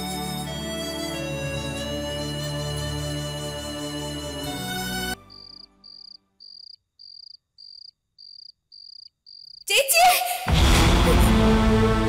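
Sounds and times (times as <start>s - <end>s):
sad background music: 0.0s - 6.0s, 10.5s - 12.0s
cricket chirping: 5.2s - 9.7s.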